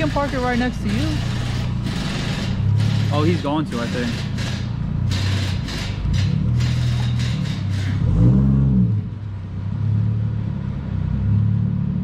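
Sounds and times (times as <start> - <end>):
car exhaust at low revs: 4.2 - 12.0.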